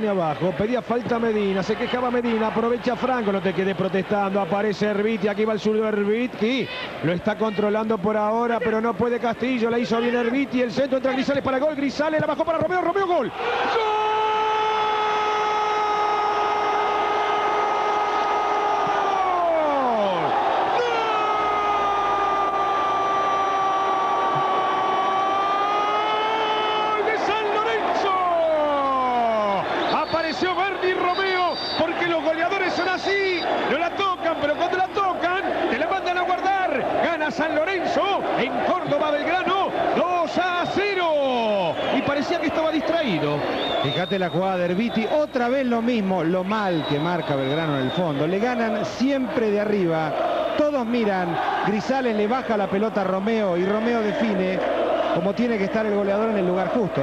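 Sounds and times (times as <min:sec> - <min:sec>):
rapid excited shouting: 0:13.1 - 0:43.4, 0:48.2 - 0:57.0.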